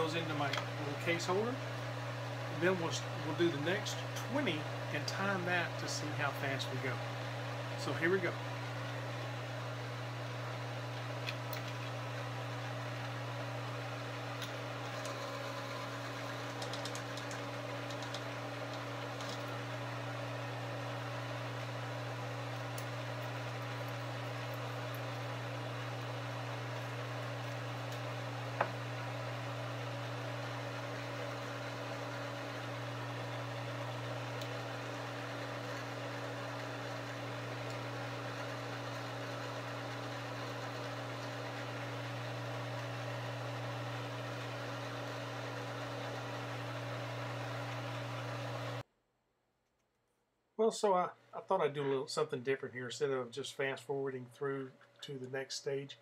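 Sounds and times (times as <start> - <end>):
electric motor running: 0.0 - 48.8.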